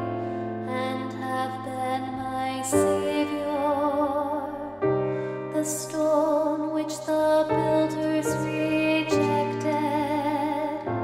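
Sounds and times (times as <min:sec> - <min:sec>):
piano playing hymn chords: 0:00.0 - 0:11.0
woman singing with vibrato: 0:05.5 - 0:10.9.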